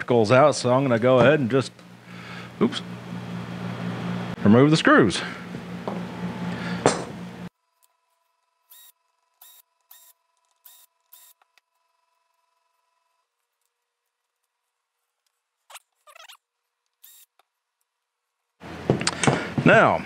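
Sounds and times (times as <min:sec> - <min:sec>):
cordless screw gun running: 0:07.8 - 0:12.4, 0:17.0 - 0:17.4.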